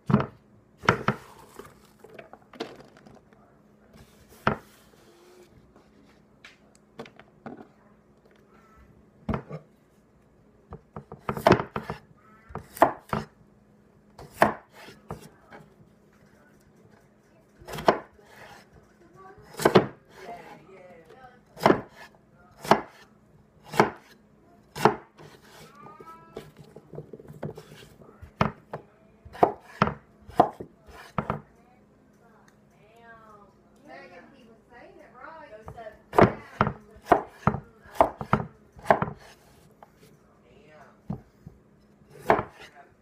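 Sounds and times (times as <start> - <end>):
knife chopping on wooden board: 0.1 - 1.3, 11.0 - 12.0, 12.6 - 13.3, 14.2 - 15.3, 17.7 - 18.6, 19.5 - 20.2, 21.6 - 23.0, 23.6 - 24.2, 24.8 - 25.7, 29.3 - 31.4, 36.1 - 39.4, 42.1 - 42.7.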